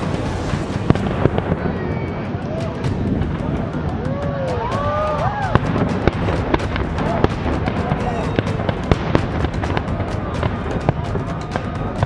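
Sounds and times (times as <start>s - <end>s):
fireworks bursting with sharp bangs: 0.0s - 12.0s
fireworks crackle: 0.0s - 12.0s.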